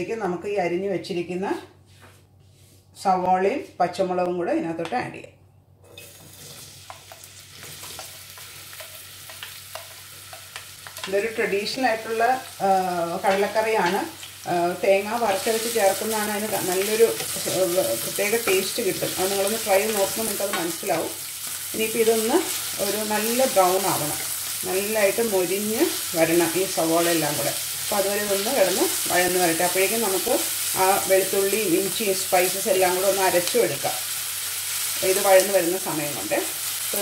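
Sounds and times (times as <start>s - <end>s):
woman talking: 0.0s - 1.7s, 3.0s - 5.4s, 11.0s - 21.2s, 21.8s - 34.0s, 35.0s - 37.0s
onions sizzling in hot oil: 5.9s - 37.0s
spatula stirring in saucepan: 6.0s - 11.2s.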